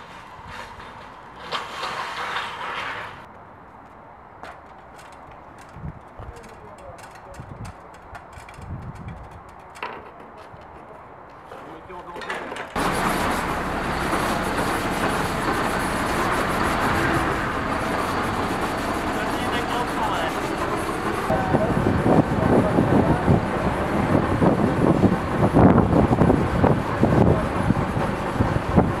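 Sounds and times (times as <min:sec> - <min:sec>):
truck engine running: 0:12.8 - 0:29.0.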